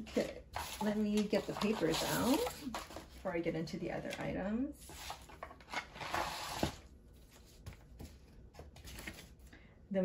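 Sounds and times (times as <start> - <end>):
paper rustling: 0.1 - 3.2, 4.8 - 9.4.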